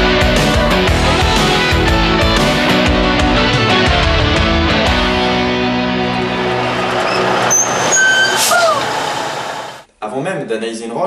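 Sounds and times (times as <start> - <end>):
van engine and tyre noise: 5.4 - 9.8
brake squeals: 6.2 - 9.8
short falling squeak: 7.0 - 9.2.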